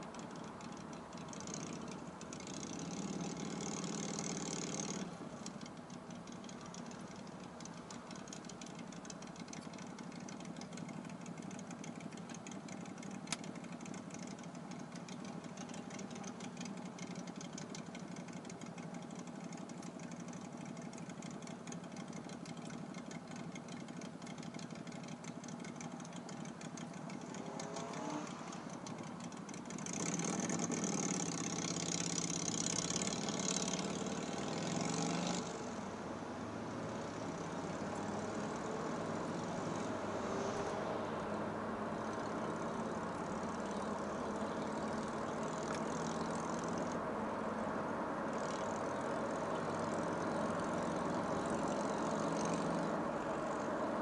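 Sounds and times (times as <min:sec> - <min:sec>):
car engine idling: 0:00.0 - 0:54.0
low road noise: 0:00.0 - 0:54.0
engine revving higher: 0:27.3 - 0:28.8, 0:29.9 - 0:54.0.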